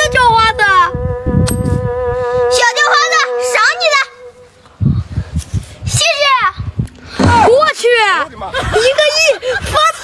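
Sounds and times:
girl speaking: 0.0 - 1.0, 2.5 - 4.3, 5.8 - 6.7, 7.3 - 10.0
low thuds: 6.6 - 7.7.

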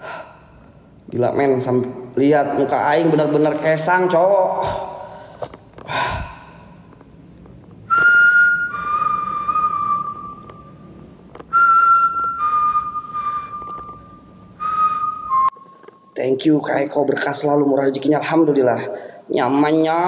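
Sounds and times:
man whistling two-note phrase: 7.9 - 10.6, 11.5 - 15.6.

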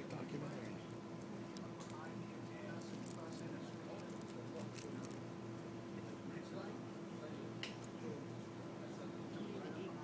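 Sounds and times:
low murmur of voices: 0.0 - 10.0
steady hum: 0.0 - 10.0.

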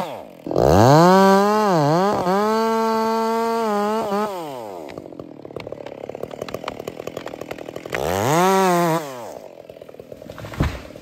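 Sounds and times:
tree wood cracking and popping: 4.0 - 11.0.

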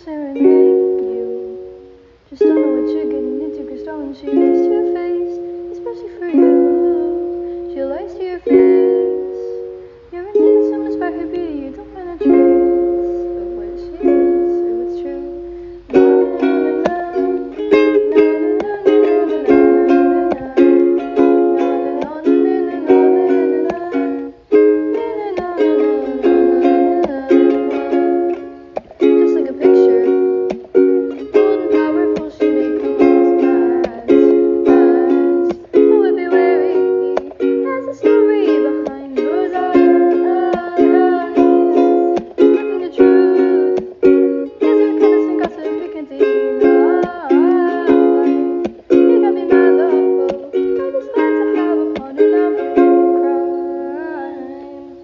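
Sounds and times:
strummed ukulele chords: 0.0 - 55.0.

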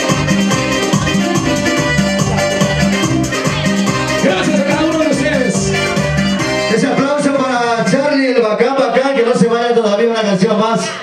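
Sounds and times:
latin dance music: 0.0 - 11.0
person's voice: 3.9 - 5.9, 6.7 - 11.0.

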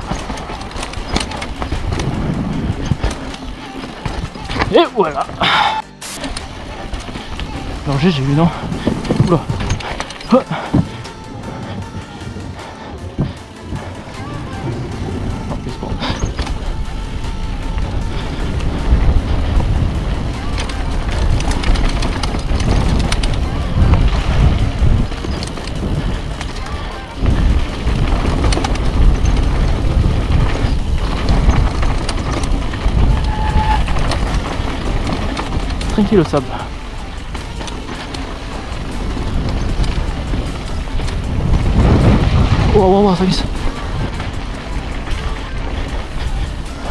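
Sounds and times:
wind buffeting microphone: 0.0 - 4.7, 6.4 - 46.9
bike tyre noise and frame rattle: 0.0 - 46.9.

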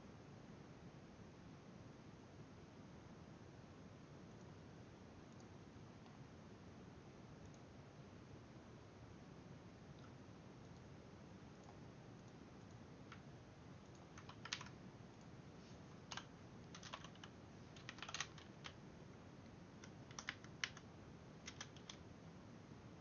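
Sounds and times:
keyboard keystrokes: 13.9 - 14.8, 16.1 - 18.8, 19.8 - 20.8, 21.4 - 22.0.

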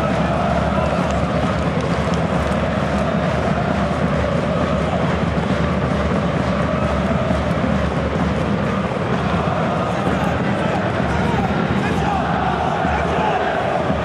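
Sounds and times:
din of many voices: 0.0 - 14.0
fans chanting: 0.0 - 14.0.

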